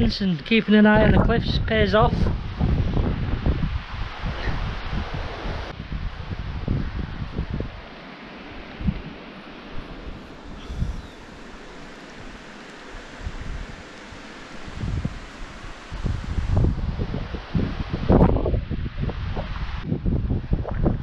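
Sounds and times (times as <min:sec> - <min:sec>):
wind buffeting microphone: 0:00.9 - 0:07.9, 0:08.6 - 0:21.0
steady hiss: 0:07.6 - 0:18.4.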